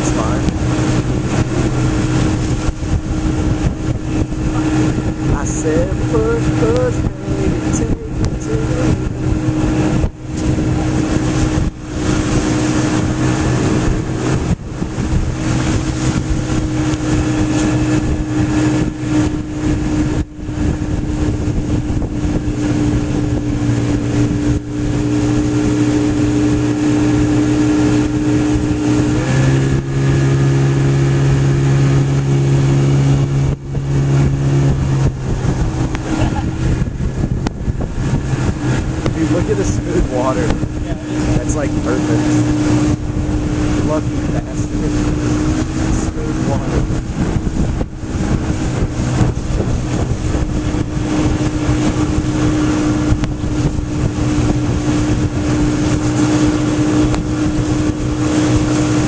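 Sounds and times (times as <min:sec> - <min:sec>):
motorboat engine running: 0:00.0 - 0:59.0.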